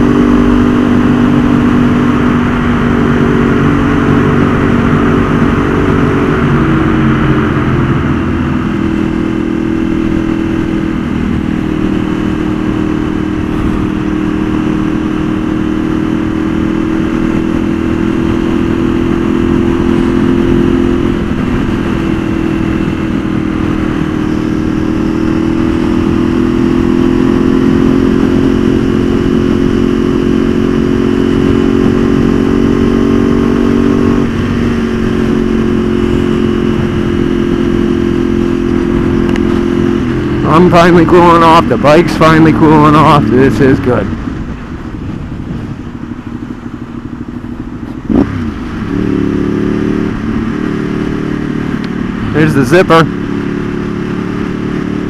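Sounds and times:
motorcycle engine cruising: 0:00.0 - 0:55.0
rough rushing noise: 0:32.9 - 0:55.0.

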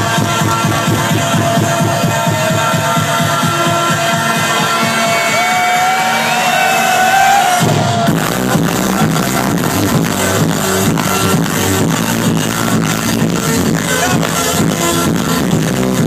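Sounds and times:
kick-drum beat: 0:00.0 - 0:06.0, 0:07.2 - 0:16.0
electronic dance music: 0:00.0 - 0:16.0.

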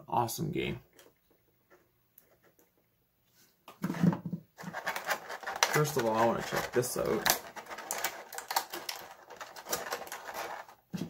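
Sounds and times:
plastic bag crinkling: 0:04.6 - 0:11.0.

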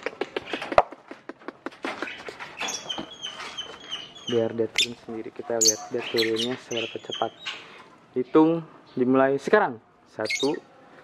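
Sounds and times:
lovebirds chirping: 0:01.7 - 0:11.0.

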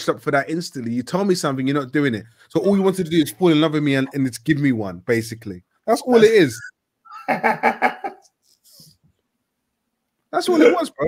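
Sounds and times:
man laughing: 0:06.4 - 0:08.3.

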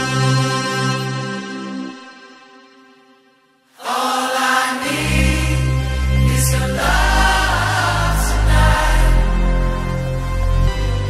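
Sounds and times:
choir-like vocals: 0:03.7 - 0:10.2
electronic dance music: 0:03.8 - 0:11.0
heavy bass line: 0:04.9 - 0:11.0.

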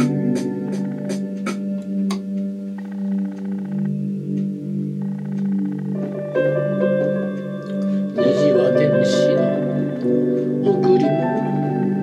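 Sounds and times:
instrumental backing music: 0:00.0 - 0:12.0.

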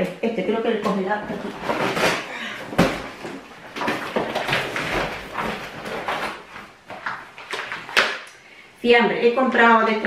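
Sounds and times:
knocks and clatter at cupboard: 0:00.9 - 0:08.2
plastic packaging rustling: 0:01.2 - 0:08.3.

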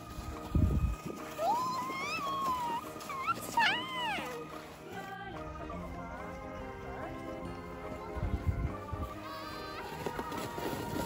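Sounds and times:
plastic sled sliding: 0:00.0 - 0:07.4, 0:08.5 - 0:11.0
background music: 0:00.0 - 0:11.0
child squealing: 0:01.4 - 0:04.4.

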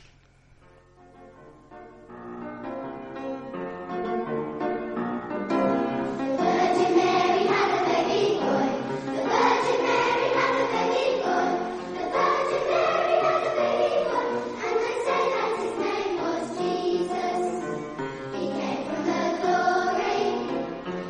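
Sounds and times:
children's choir singing: 0:06.0 - 0:21.0.

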